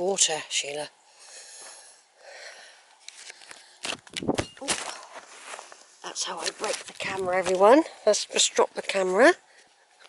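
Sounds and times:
person breathing close to microphone: 1.1 - 3.9.

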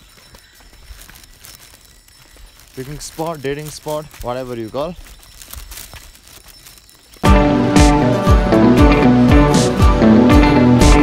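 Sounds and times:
footsteps on wet stone steps: 0.0 - 7.3.

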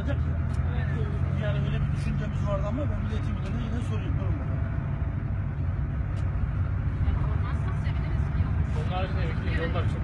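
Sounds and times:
minibus engine rumble: 0.0 - 10.0
passengers talking: 0.0 - 10.0
road noise: 0.0 - 10.0.

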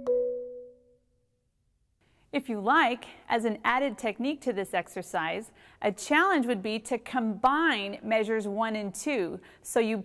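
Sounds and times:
marimba notes ringing: 0.0 - 0.8.

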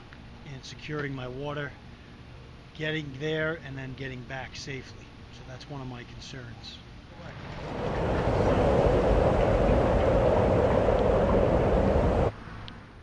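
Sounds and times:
loud rushing noise: 7.2 - 12.3.

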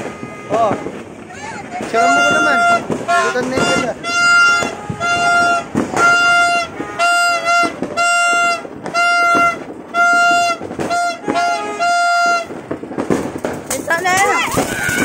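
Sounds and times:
horn blasts: 0.0 - 1.1, 1.9 - 12.6
firework fountain crackling hiss: 0.0 - 15.0.

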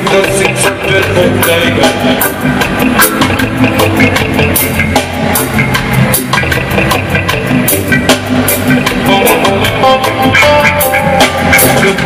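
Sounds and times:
bass line: 0.0 - 12.0
drum kit: 0.0 - 12.0
reggae band playing: 0.0 - 12.0.

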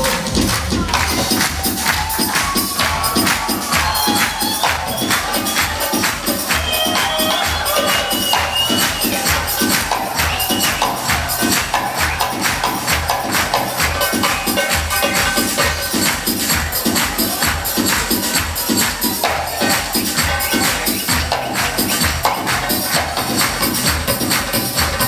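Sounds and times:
people clapping in time: 0.0 - 25.0
steady drum beat: 0.0 - 25.0.

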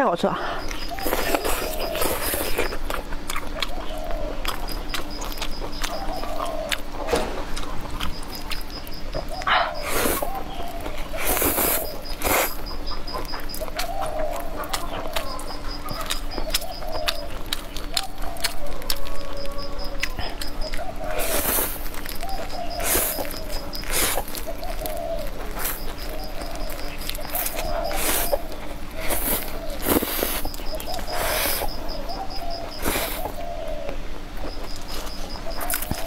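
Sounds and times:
chewing: 0.6 - 36.0
noodles being slurped: 11.2 - 12.6, 21.1 - 22.2, 22.8 - 28.4, 29.0 - 31.8
wavering call: 13.6 - 34.0.

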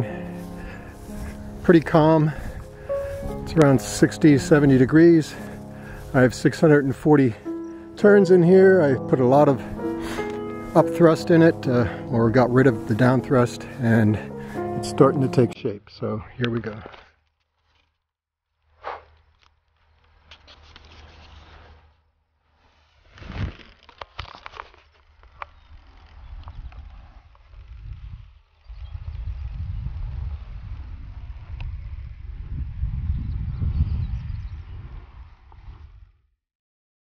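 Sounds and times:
wind rumble on microphone: 25.6 - 36.3.

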